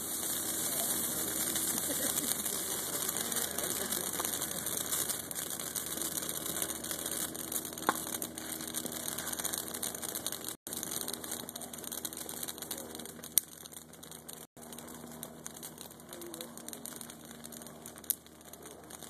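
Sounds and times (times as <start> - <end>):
fire crackling and hissing: 0.0 - 19.0.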